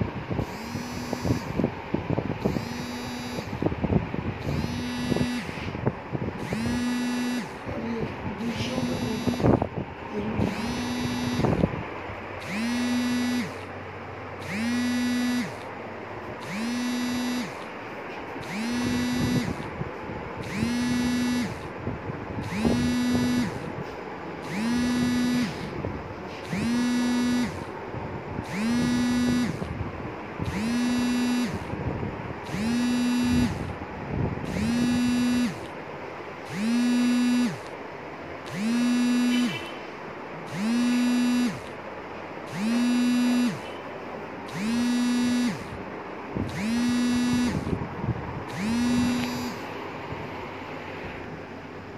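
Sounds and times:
pulsing buzzing alarm: 0:00.0 - 0:01.7, 0:02.4 - 0:03.8, 0:04.4 - 0:05.8, 0:06.4 - 0:07.7, 0:08.4 - 0:11.8, 0:12.4 - 0:13.7, 0:14.4 - 0:15.7, 0:16.4 - 0:17.7, 0:18.4 - 0:19.7, 0:20.4 - 0:21.7, 0:22.4 - 0:23.8, 0:24.4 - 0:27.7, 0:28.4 - 0:29.8, 0:30.4 - 0:33.8, 0:34.4 - 0:35.7, 0:36.4 - 0:37.7, 0:38.4 - 0:39.8, 0:40.4 - 0:41.7, 0:42.5 - 0:43.9, 0:44.5 - 0:45.8, 0:46.4 - 0:47.8, 0:48.5 - 0:49.6.

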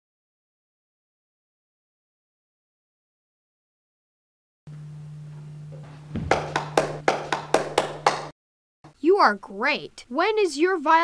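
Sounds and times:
low electrical hum: 0:04.7 - 0:08.3
hand claps: 0:06.2 - 0:08.3.

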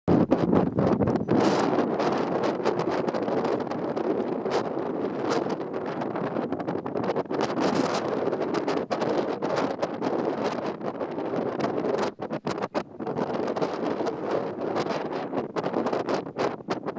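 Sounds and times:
wind buffeting microphone: 0:00.1 - 0:16.9.

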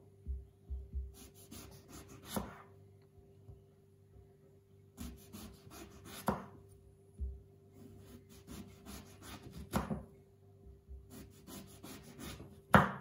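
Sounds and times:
knife slicing eggplant: 0:01.2 - 0:02.7, 0:05.0 - 0:06.6, 0:07.8 - 0:10.1, 0:11.1 - 0:13.0.

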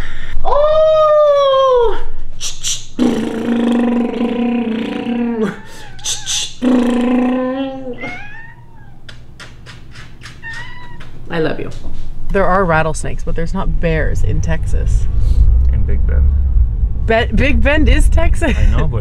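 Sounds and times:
cat meowing and yowling: 0:05.5 - 0:06.4, 0:07.9 - 0:09.1, 0:10.4 - 0:11.1.

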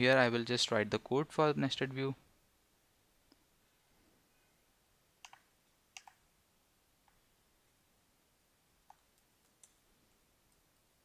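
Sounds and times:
computer mouse clicks: 0:05.2 - 0:06.2, 0:08.8 - 0:09.8.

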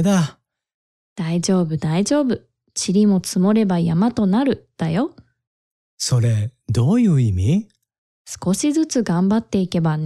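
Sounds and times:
person speaking: 0:00.0 - 0:00.4.

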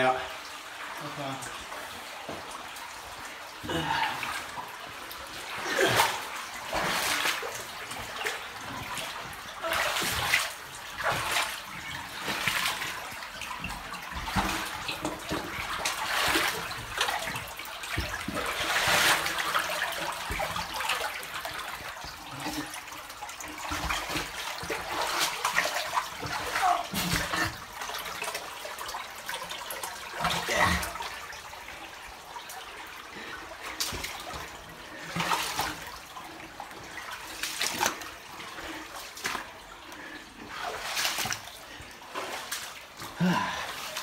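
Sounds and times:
footsteps wading through water: 0:02.0 - 0:44.0.

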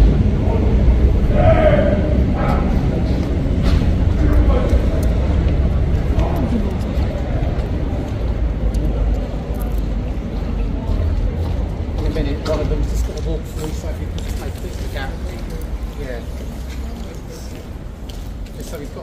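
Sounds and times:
low rumble: 0:00.0 - 0:12.7
people talking: 0:00.0 - 0:17.8, 0:18.5 - 0:19.0.

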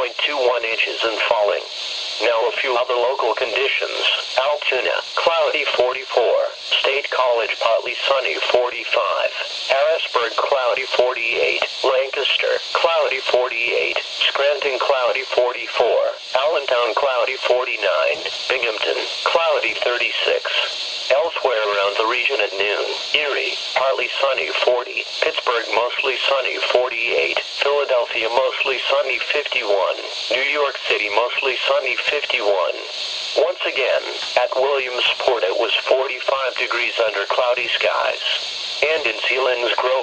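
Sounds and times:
announcer voice through small speaker: 0:00.0 - 0:40.0.

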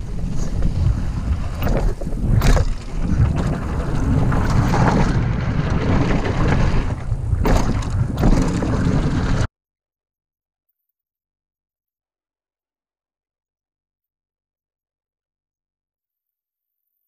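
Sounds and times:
bike rolling over trail: 0:00.0 - 0:09.5
wind rushing over microphone: 0:00.0 - 0:09.5.

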